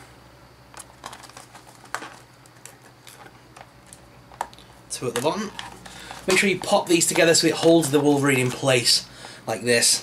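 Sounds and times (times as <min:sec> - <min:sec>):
plastic capsule clicks and rustles: 0:00.7 - 0:07.6.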